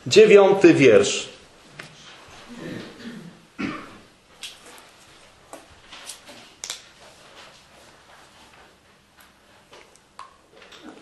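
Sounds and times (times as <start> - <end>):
paper pages rustling: 4.4 - 8.6.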